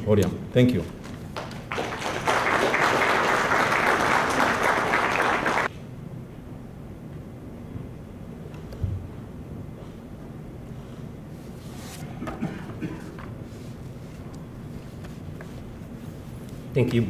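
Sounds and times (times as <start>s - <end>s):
audience applauding: 1.3s - 5.7s.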